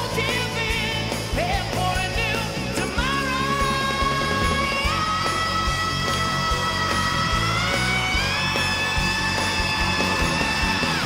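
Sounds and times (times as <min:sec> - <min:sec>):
distorted electric guitar: 0:00.0 - 0:11.0
heavy metal band: 0:00.0 - 0:11.0
steady drum beat: 0:00.0 - 0:11.0.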